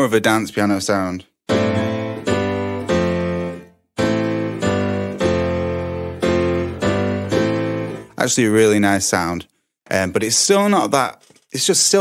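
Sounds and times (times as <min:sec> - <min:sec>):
piano chord stabs: 0:01.5 - 0:08.2.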